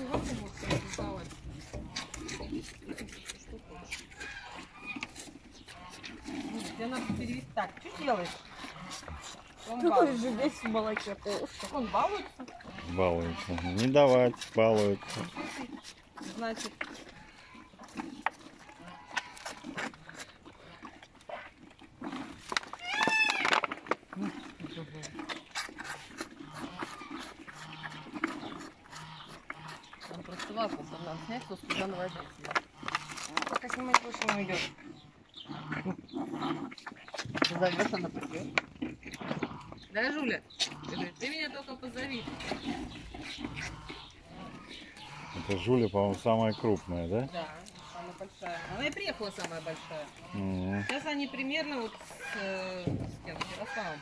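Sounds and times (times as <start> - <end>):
calves sucking and smacking: 0.0 - 54.0
twigs crackling: 22.0 - 30.1, 31.7 - 34.8
calf squealing call: 22.8 - 23.6
low voices: 50.3 - 50.9.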